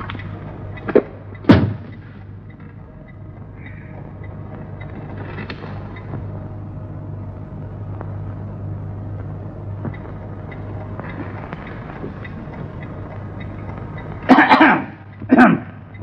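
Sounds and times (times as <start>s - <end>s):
low hum of film soundtrack: 0.0s - 16.0s
man coughing: 14.3s - 15.7s.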